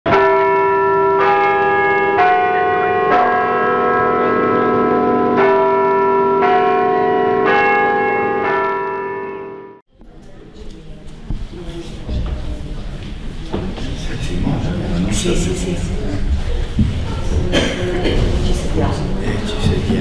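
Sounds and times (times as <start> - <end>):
church bells ringing: 0.1 - 9.8.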